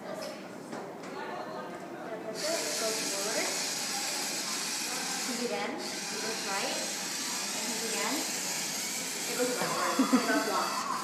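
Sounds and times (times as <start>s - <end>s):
small electric motors whirring: 2.4s - 11.0s.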